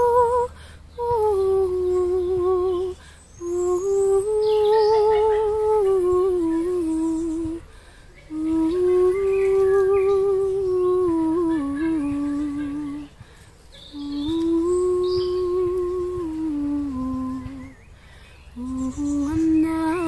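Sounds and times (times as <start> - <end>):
woman singing wordless notes: 0.0 - 20.0
woman breathing: 0.5 - 1.0, 3.0 - 3.4, 7.6 - 8.3, 13.1 - 13.7, 17.8 - 18.6.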